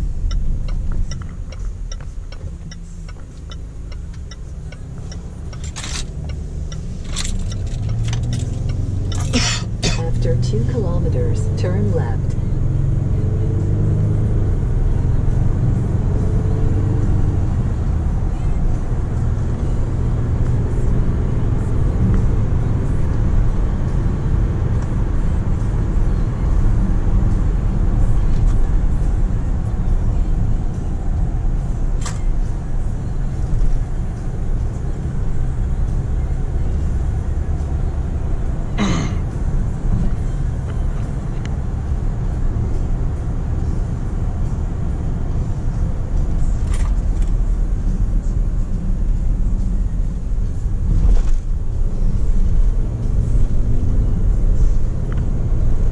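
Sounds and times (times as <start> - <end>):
diesel engine accelerating: 0.0 - 55.9
tyre and road noise: 0.0 - 55.9.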